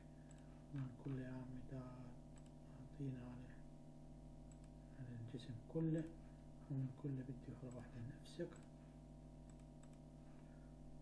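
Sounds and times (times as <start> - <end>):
low electrical hum: 0.0 - 11.0
faint mouse clicks: 0.2 - 0.9, 2.4 - 2.6, 4.4 - 4.8, 7.6 - 7.9, 8.5 - 8.8, 9.4 - 10.5.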